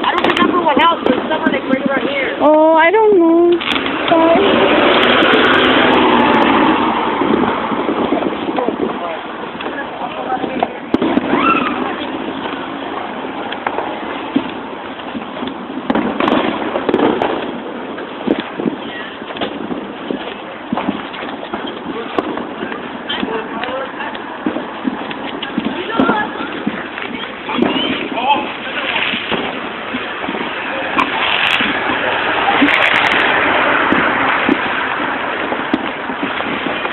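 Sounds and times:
people talking and calling out: 0.0s - 36.9s
steady noisy background: 0.0s - 36.9s
steady rushing noise: 0.0s - 36.9s
firework pop: 3.5s - 5.8s, 28.8s - 36.9s.

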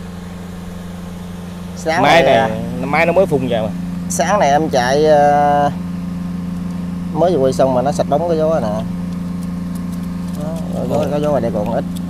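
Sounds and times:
low motor drone of aerator: 0.0s - 12.0s.

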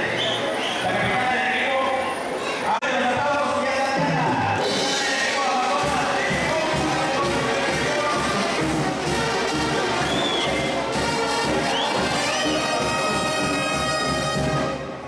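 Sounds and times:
short high whistles: 0.0s - 0.9s, 10.0s - 10.8s, 11.7s - 12.8s
brass band music: 4.0s - 15.0s.

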